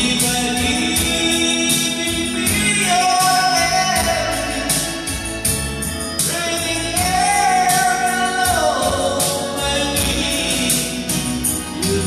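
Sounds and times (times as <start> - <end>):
backing track with steady beat: 0.0 - 12.0
man singing karaoke: 0.0 - 12.0.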